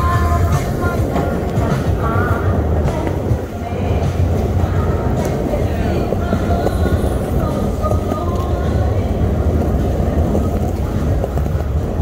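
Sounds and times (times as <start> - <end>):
faint music: 0.0 - 12.0
wind rumble on microphone: 0.0 - 12.0.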